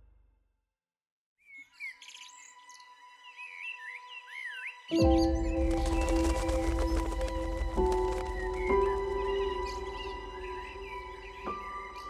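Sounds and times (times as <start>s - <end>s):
birds chirping and singing: 1.5s - 12.0s.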